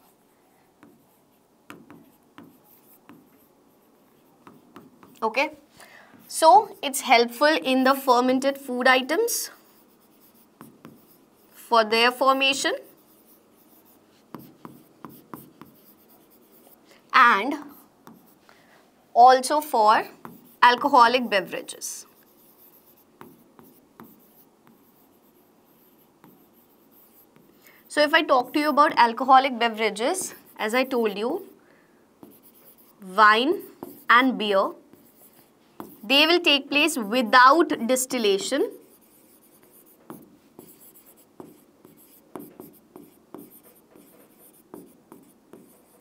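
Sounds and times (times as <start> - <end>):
marker scratching on board: 0.0 - 18.5, 19.4 - 31.6, 32.2 - 46.0
stylus tapping on board: 1.7 - 3.3.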